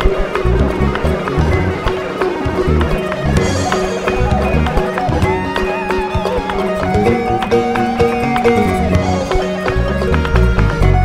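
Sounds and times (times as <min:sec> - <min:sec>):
balafon notes: 0:00.0 - 0:11.0
hand percussion: 0:00.0 - 0:11.0
plucked lute notes: 0:00.0 - 0:11.0
bass line: 0:00.4 - 0:11.0.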